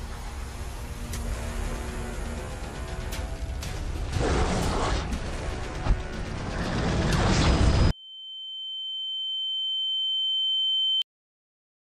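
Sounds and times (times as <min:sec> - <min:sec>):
trailer sound effects and score: 0:00.0 - 0:07.9.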